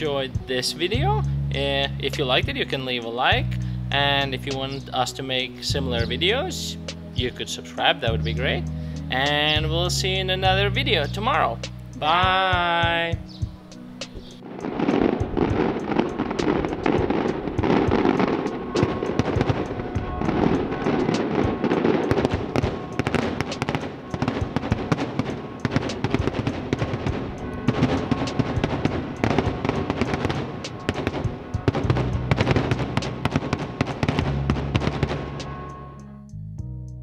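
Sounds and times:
background music: 0:00.0 - 0:37.0
fireworks crackling and popping: 0:14.1 - 0:35.7.

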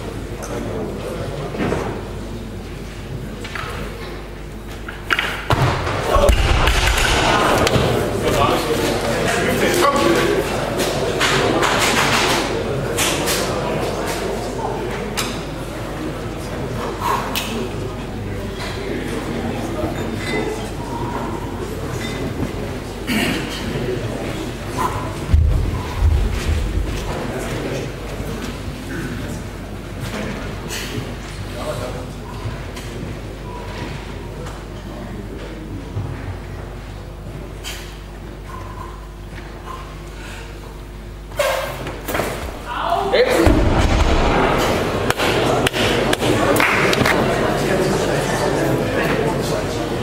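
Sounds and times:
murmuring spectators: 0:00.0 - 0:50.0
barbell crashing onto platform: 0:05.5 - 0:08.1, 0:43.4 - 0:45.0.

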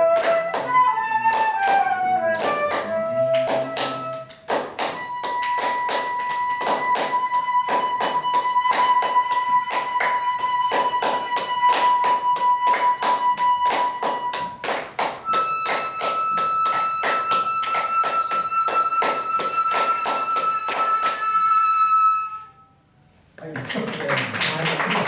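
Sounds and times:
flute held notes: 0:00.0 - 0:23.0.

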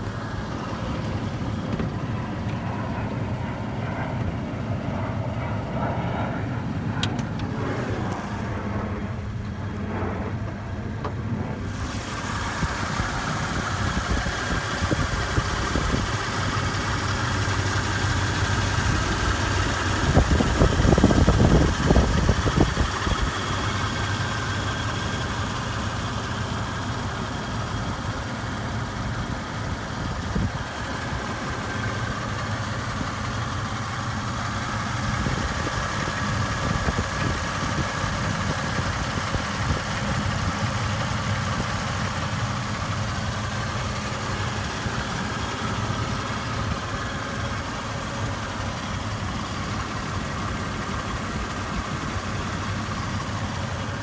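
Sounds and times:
engine idling: 0:00.0 - 0:54.0
rough low engine rumble: 0:00.0 - 0:54.0.

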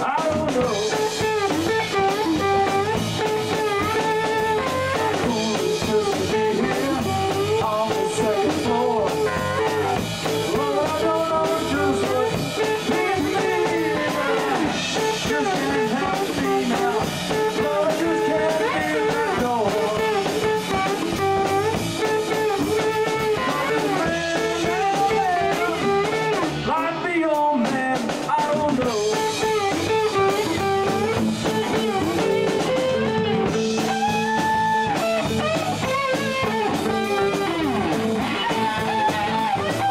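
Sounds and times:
drum kit: 0:00.0 - 0:39.9
electric guitars: 0:00.0 - 0:39.9.

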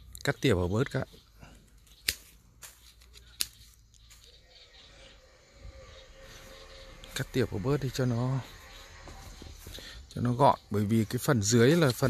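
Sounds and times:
pruning shears snipping: 0:01.8 - 0:04.3
faint blade clicks: 0:01.9 - 0:03.8.

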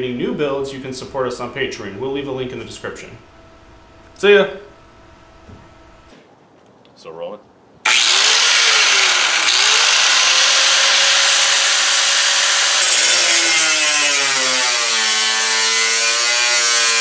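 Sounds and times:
power tool cutting: 0:07.9 - 0:17.0.

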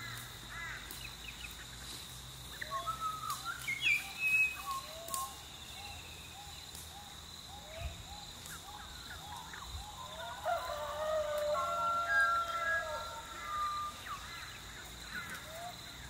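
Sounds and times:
insect drone: 0:00.0 - 0:16.0
bird chirps: 0:02.5 - 0:10.4
rooster crowing: 0:10.0 - 0:14.2.

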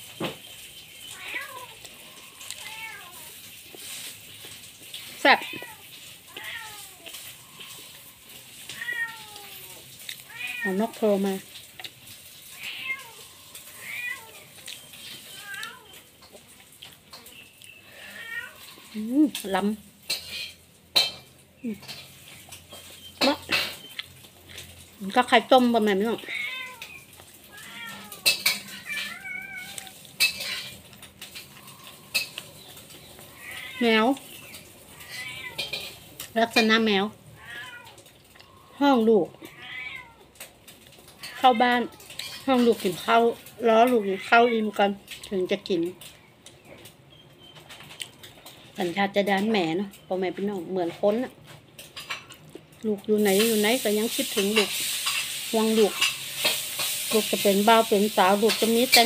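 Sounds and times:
cat meowing: 0:01.1 - 0:03.4, 0:05.3 - 0:07.8, 0:08.5 - 0:11.0, 0:12.4 - 0:16.1, 0:17.9 - 0:19.0, 0:26.2 - 0:30.1, 0:33.3 - 0:34.3, 0:34.9 - 0:36.0, 0:37.3 - 0:38.1, 0:39.3 - 0:40.4, 0:43.9 - 0:44.8.

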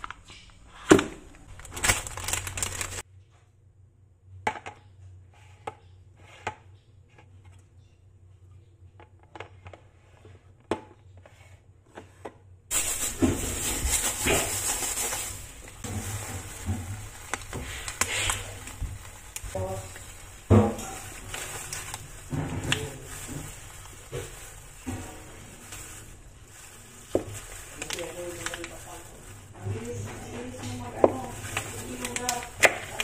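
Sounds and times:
foil wrapper crinkling: 0:00.0 - 0:03.1, 0:12.7 - 0:33.0.

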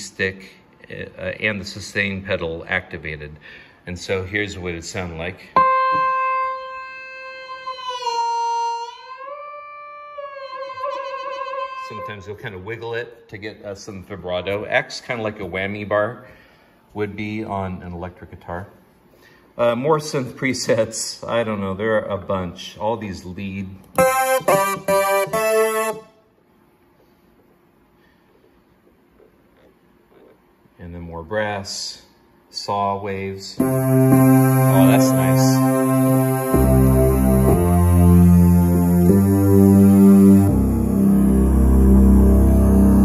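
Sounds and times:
synth lead with pitch bends: 0:05.6 - 0:12.5, 0:24.0 - 0:26.2, 0:33.6 - 0:43.0.

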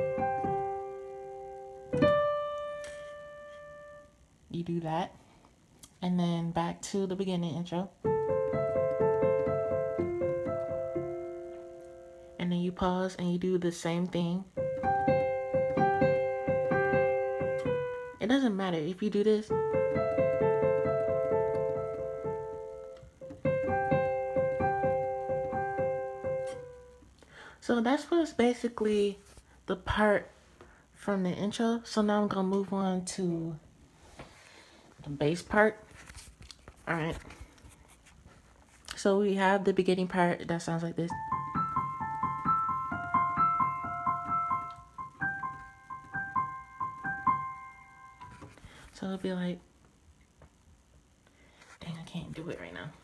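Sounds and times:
digital piano high notes: 0:00.0 - 0:04.1, 0:41.1 - 0:48.5
digital piano melody: 0:00.0 - 0:04.2, 0:08.0 - 0:12.9, 0:14.4 - 0:27.1, 0:41.1 - 0:48.6.

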